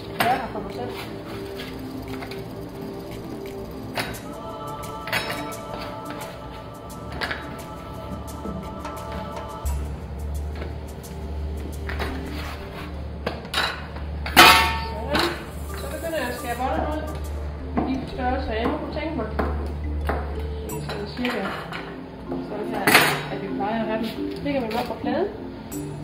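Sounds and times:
steady low hum: 0.0 - 26.0
metal utensils clinking on wood: 5.1 - 6.0, 13.3 - 17.2, 20.7 - 22.0.

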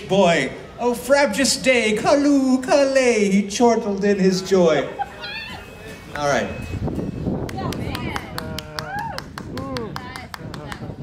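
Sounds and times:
voices calling out: 4.4 - 10.0
hand claps: 7.4 - 11.0.

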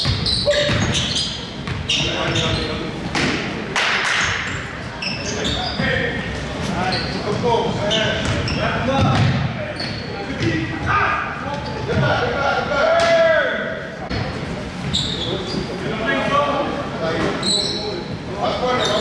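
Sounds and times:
sneakers squeaking: 0.0 - 12.4, 14.0 - 15.9, 17.2 - 19.0.

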